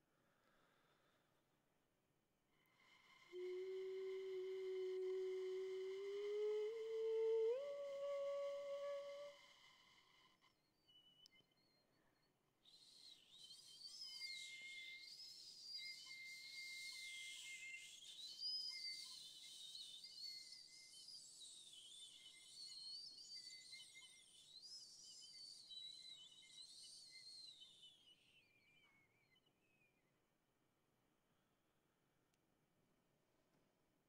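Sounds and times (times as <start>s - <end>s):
piccolo playing softly: 3.0s - 10.3s.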